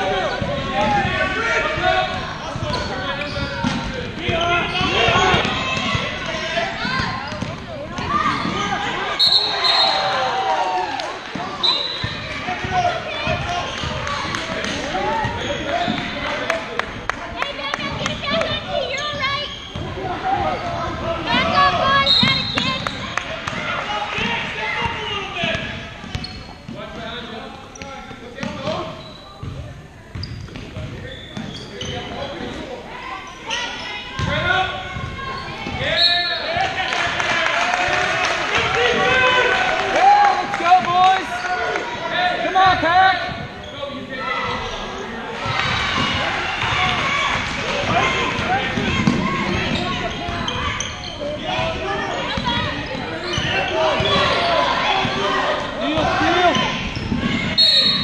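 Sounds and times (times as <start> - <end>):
shouts and chatter in gym: 0.0 - 58.0.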